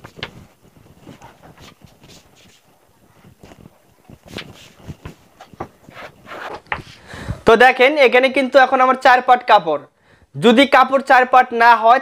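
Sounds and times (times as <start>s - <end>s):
fabric rustling on table: 0.0s - 7.0s.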